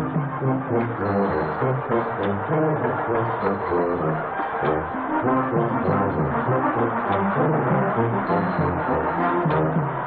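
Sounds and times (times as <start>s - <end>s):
wind band playing: 0.0s - 10.0s.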